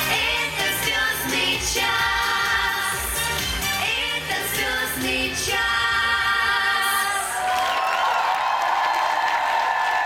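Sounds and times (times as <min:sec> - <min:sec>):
children singing pop song: 0:00.0 - 0:07.5
audience applause and cheering: 0:07.0 - 0:10.0.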